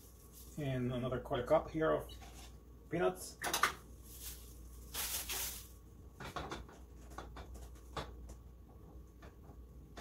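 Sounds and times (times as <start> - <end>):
plastic bag crinkling: 3.9 - 5.8.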